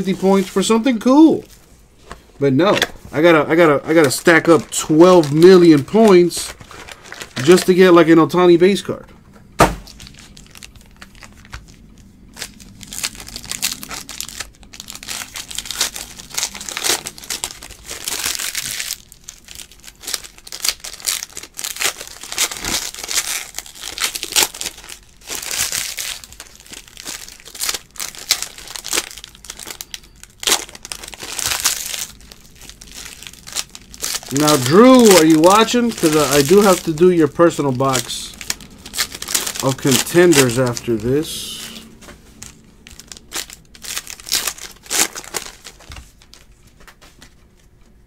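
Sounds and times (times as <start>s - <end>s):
foil wrappers tearing and crinkling: 3.2s - 8.2s, 9.8s - 47.3s.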